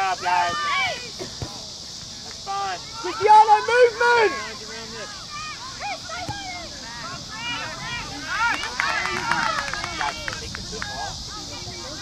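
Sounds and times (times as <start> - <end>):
distant voices shouting: 0.0 - 12.0
steady high hiss: 0.0 - 12.0.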